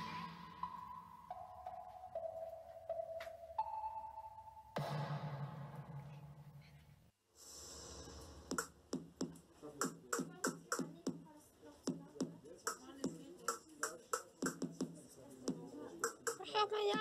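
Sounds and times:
electronic percussive hits: 4.8s - 6.1s, 7.9s - 10.8s.

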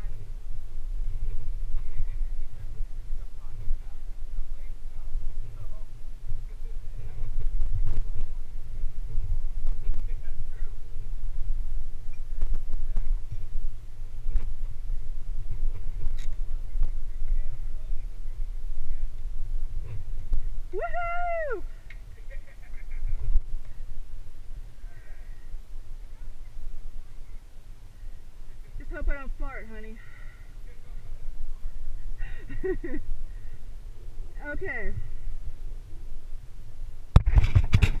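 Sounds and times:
wind buffeting microphone: 0.0s - 38.0s
drawn-out high call: 20.7s - 22.0s.

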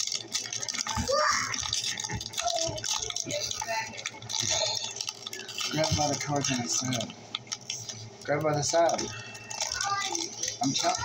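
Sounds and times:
foil wrapper crinkling: 0.0s - 11.0s.

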